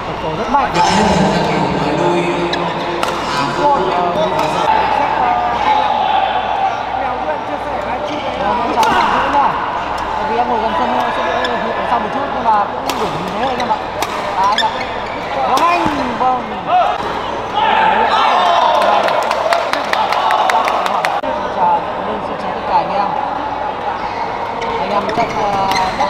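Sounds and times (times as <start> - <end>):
spectators' voices: 0.0 - 26.0
shoes squeaking on court floor: 14.4 - 16.0.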